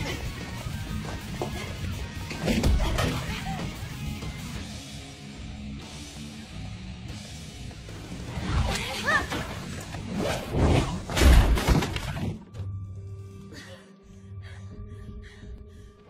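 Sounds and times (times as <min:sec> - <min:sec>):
low background music: 0:00.0 - 0:16.0.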